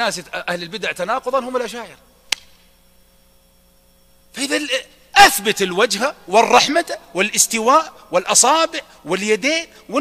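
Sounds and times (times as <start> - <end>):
faint steady hum: 0.0 - 10.0
sharp click: 2.3 - 2.7.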